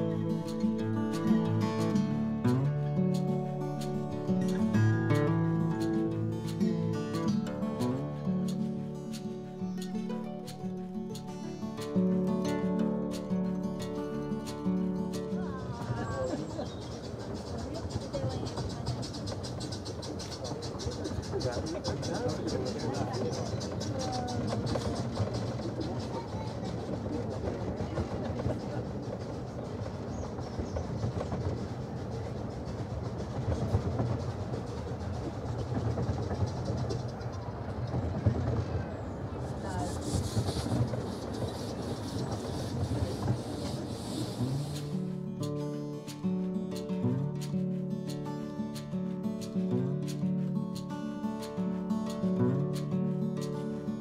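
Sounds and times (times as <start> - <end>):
acoustic guitar music: 0.0 - 27.0, 39.6 - 54.0
train running rumble: 0.0 - 54.0
steam hissing: 39.4 - 49.5.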